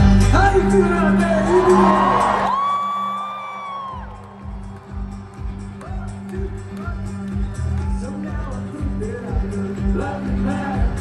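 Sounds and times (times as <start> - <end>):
crowd whooping: 1.4 - 6.2, 7.5 - 8.4.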